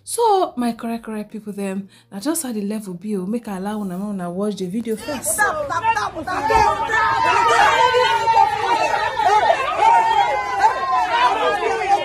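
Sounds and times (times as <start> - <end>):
women talking excitedly: 4.5 - 12.0.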